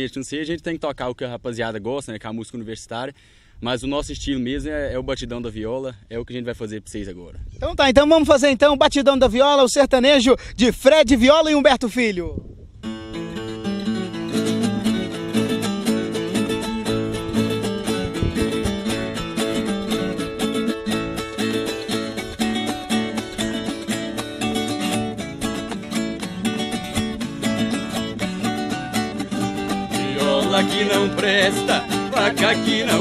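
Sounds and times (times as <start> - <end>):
viola and acoustic guitar strumming: 12.8 - 33.0.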